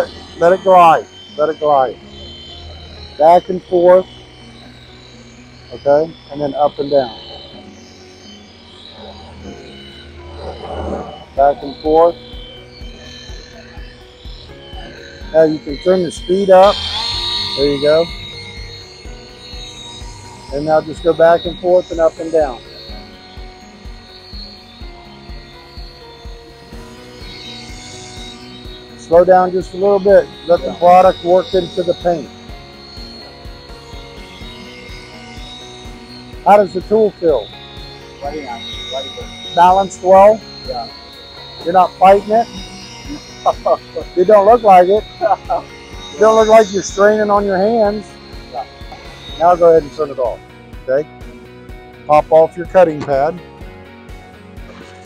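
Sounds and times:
background music with steady beat: 0:00.0 - 0:55.0
polisher buzzing: 0:00.0 - 0:55.0.

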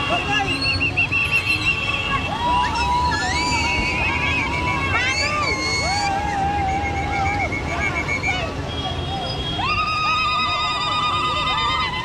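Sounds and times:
women ululating: 0:02.2 - 0:07.8, 0:09.6 - 0:12.0.

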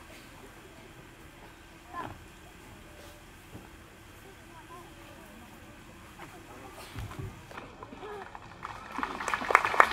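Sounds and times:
crowd murmuring: 0:00.0 - 0:09.9.

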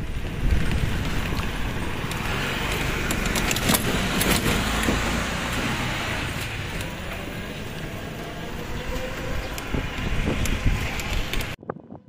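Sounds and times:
vehicle road noise rumble: 0:00.0 - 0:12.0
rattling clicks: 0:01.2 - 0:05.0.

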